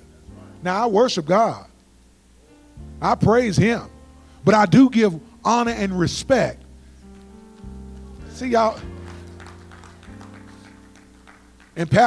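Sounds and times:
church keyboard chords: 0.0s - 12.0s.

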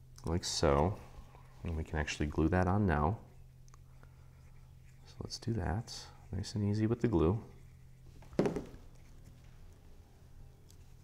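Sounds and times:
faint steady hum: 0.0s - 11.0s
bottle knocking on mat: 8.4s - 8.8s.

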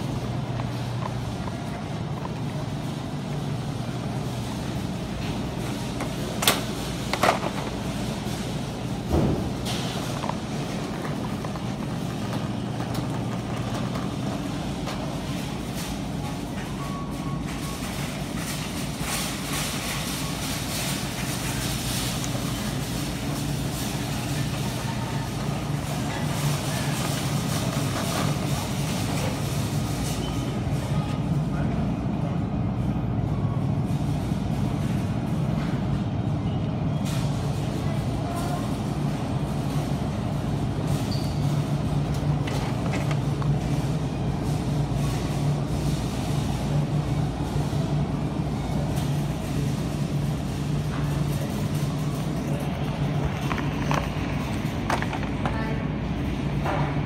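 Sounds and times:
faint voices: 0.0s - 57.0s
steady low hum: 0.0s - 57.0s.

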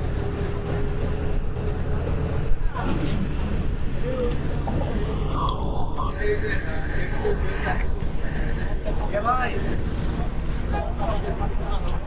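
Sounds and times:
bus engine and tyres rumbling: 0.0s - 12.0s.

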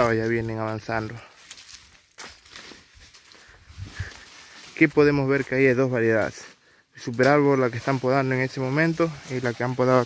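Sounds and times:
branches crackling: 0.0s - 10.0s
footsteps on dry leaves: 0.0s - 10.0s.

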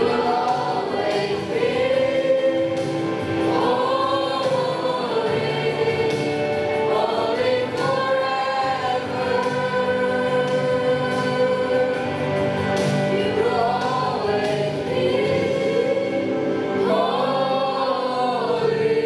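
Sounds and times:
choir singing a hymn: 0.0s - 19.0s.

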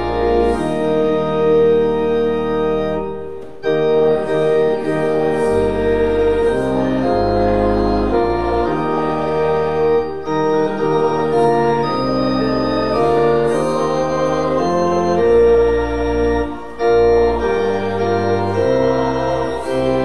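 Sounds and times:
church organ playing a hymn: 0.0s - 20.0s.

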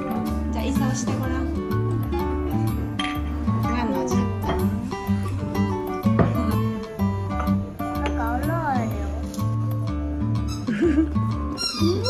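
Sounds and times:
background music with bass line: 0.0s - 12.0s
cup clinking on saucer: 3.0s - 3.3s.

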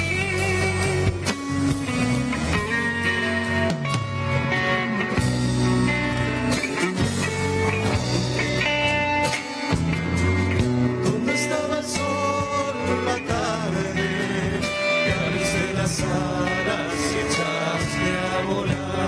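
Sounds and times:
acoustic guitars: 0.0s - 19.0s
drum kit: 0.0s - 19.0s
electric guitar: 0.0s - 19.0s.

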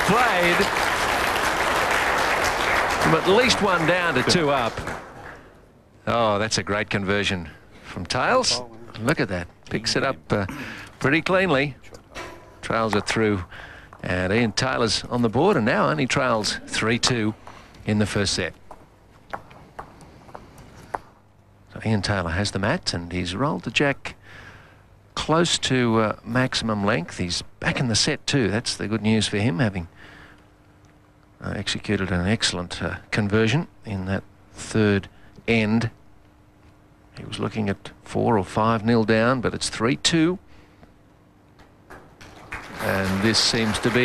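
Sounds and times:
spectators applauding: 0.0s - 5.3s, 41.9s - 44.0s
faint hall background: 0.0s - 22.3s, 23.0s - 44.0s
faint steady hum: 0.0s - 44.0s.

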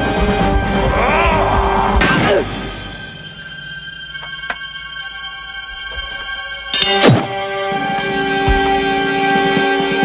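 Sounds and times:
thunk impact effect: 6.9s - 7.4s.

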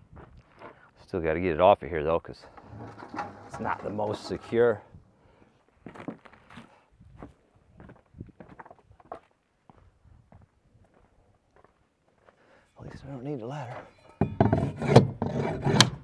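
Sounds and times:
quiet uneven footsteps: 0.0s - 1.0s, 2.5s - 13.9s.

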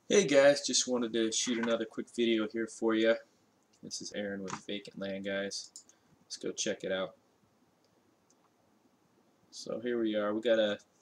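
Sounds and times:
computer mouse clicks: 5.6s - 6.0s, 7.8s - 8.6s.

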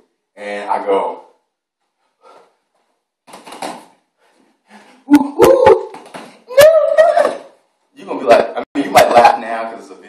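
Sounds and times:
high-pitched vocal cry: 5.1s - 7.6s.

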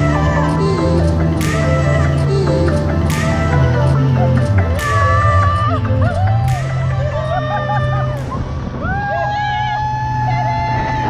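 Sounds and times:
wavering voice: 0.0s - 8.5s
person whooping: 4.9s - 11.0s.

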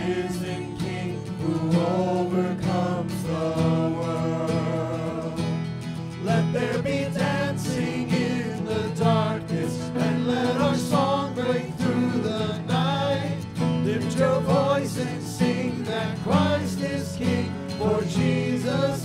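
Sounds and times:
strummed acoustic guitar: 0.0s - 19.0s
voices singing: 0.0s - 19.0s.

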